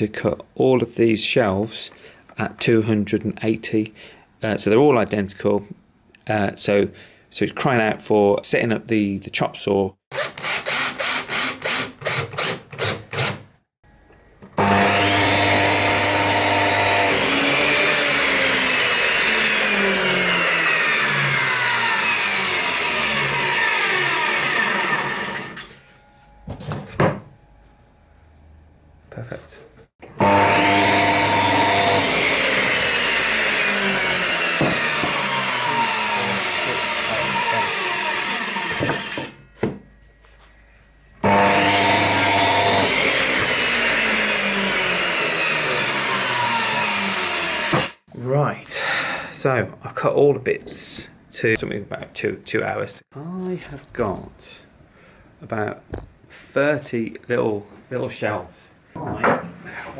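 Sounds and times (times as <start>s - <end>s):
mitre saw cutting: 10.1s - 13.4s, 14.6s - 25.8s, 30.1s - 39.4s, 41.2s - 48.1s.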